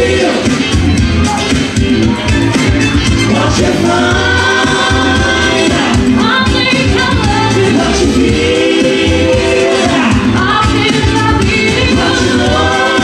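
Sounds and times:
group singing pop song live: 0:00.0 - 0:00.7, 0:03.1 - 0:13.0
steady bass line: 0:00.0 - 0:13.0.

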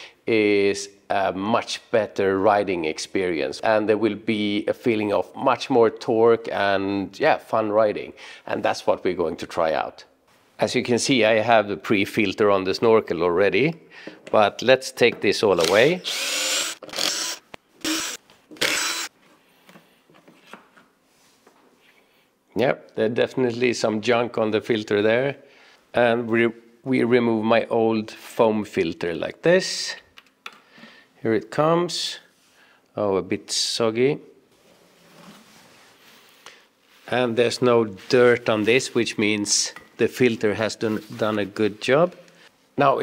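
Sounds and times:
cordless drill spinning out screws: 0:15.6 - 0:19.1
faint rustling of parts: 0:18.0 - 0:22.5.

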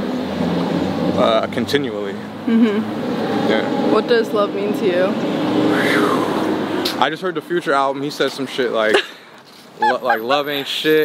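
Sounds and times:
vehicle engine passing: 0:00.0 - 0:08.8
traffic noise: 0:00.0 - 0:11.0.

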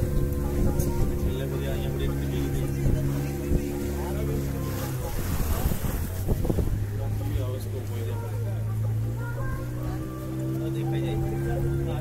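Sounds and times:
wind buffeting microphone: 0:00.0 - 0:08.3
boat engine droning: 0:00.0 - 0:12.0
water rushing past: 0:00.0 - 0:12.0.

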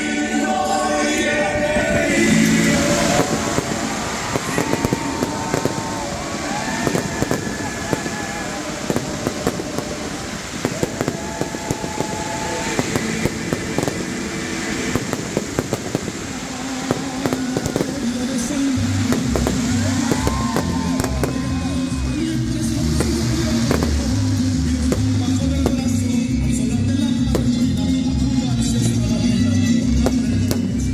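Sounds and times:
music with heavy pulsing bass: 0:01.2 - 0:06.8, 0:12.5 - 0:30.9
fireworks popping and banging: 0:02.8 - 0:29.1, 0:29.7 - 0:30.9.

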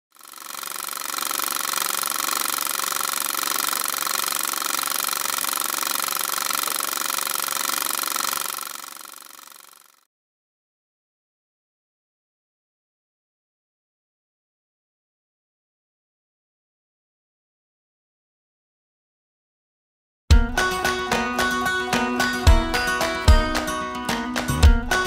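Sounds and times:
film projector running: 0:00.1 - 0:10.0.

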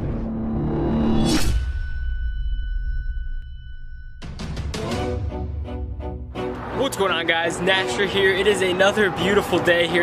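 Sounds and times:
high ringing tones: 0:01.3 - 0:04.4.

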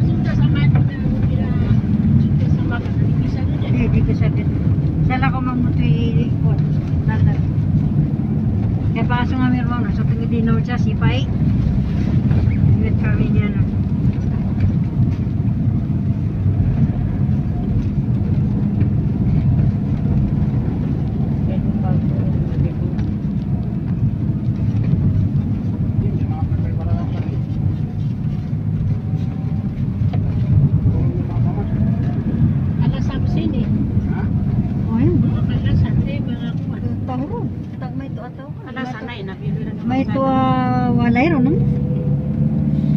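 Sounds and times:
engine and road rumble: 0:00.0 - 0:42.9.

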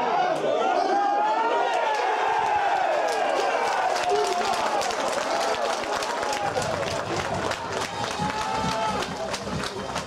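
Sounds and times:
men shouting and cheering: 0:00.0 - 0:10.0.

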